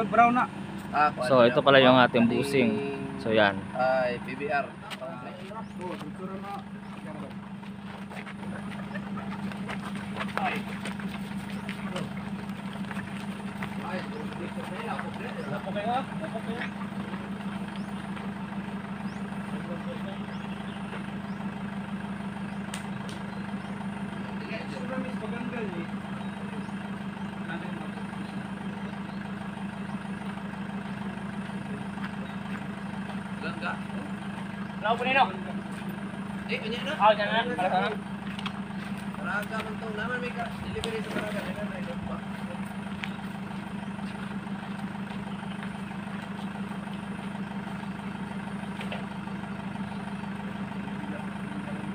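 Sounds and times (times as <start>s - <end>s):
van engine idling: 0.0s - 51.9s
faint voices: 1.0s - 21.1s, 31.0s - 51.9s.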